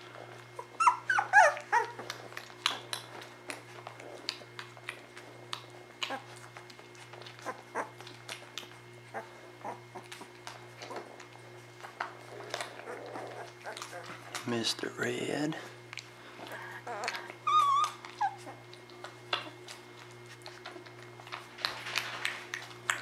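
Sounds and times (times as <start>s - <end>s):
steady low hum: 0.0s - 23.0s
clicks and smacks of nursing puppies: 0.1s - 14.8s, 15.9s - 23.0s
puppy whimpering: 0.6s - 2.9s, 6.0s - 6.4s, 7.2s - 8.2s, 9.1s - 10.2s, 12.4s - 14.3s, 16.5s - 18.8s.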